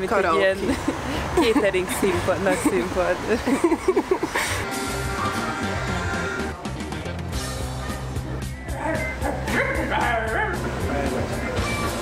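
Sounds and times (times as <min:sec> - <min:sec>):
background music with beat: 0:04.6 - 0:12.0.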